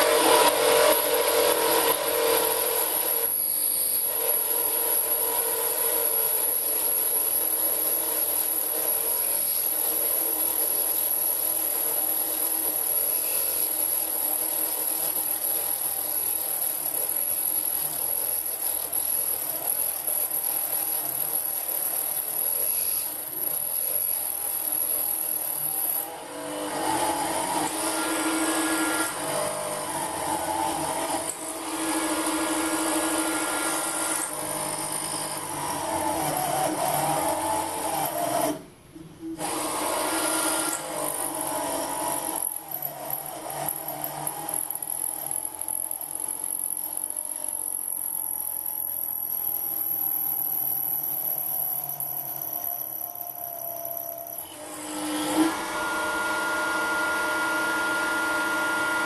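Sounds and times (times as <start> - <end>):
drill cutting into steel: 0.0 - 59.0
motor whine: 0.0 - 59.0.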